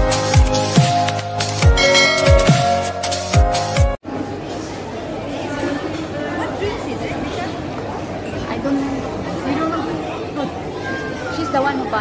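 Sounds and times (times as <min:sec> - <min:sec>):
indistinct chatter of people: 0:04.0 - 0:12.0.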